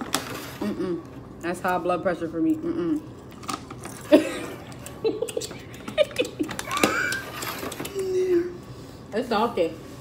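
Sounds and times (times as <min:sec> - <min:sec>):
woman laughing: 0:04.0 - 0:08.5.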